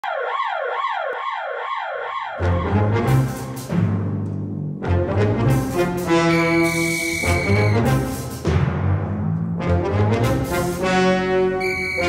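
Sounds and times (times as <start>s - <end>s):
siren wailing up and down: 0.0s - 2.5s, 11.6s - 12.0s.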